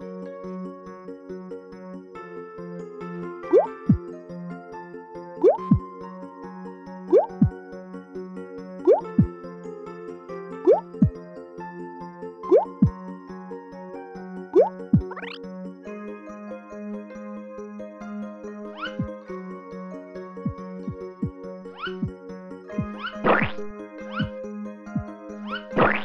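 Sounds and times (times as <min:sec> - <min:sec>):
gentle children's music: 0:00.0 - 0:26.0
cartoon bloop and plop effects: 0:05.4 - 0:05.8, 0:07.1 - 0:07.4, 0:08.9 - 0:09.3, 0:12.5 - 0:12.9, 0:14.6 - 0:15.4, 0:18.8 - 0:19.1, 0:22.8 - 0:24.3, 0:25.7 - 0:26.0.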